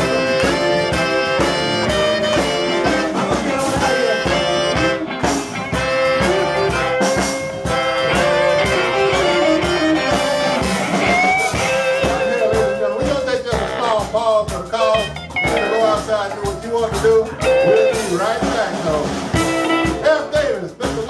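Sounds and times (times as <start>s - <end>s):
baritone saxophone lines: 0.0s - 21.0s
live blues band: 0.0s - 21.0s
steady drum beat: 0.0s - 21.0s.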